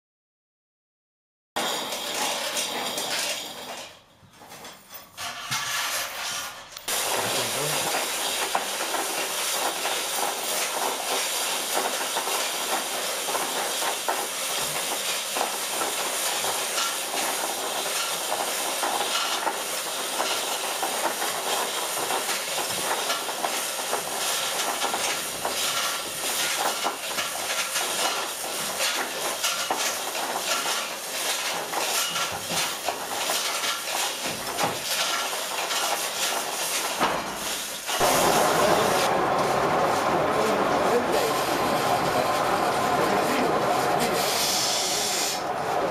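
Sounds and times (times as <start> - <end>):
hissing rattling machinery: 1.6 - 45.9.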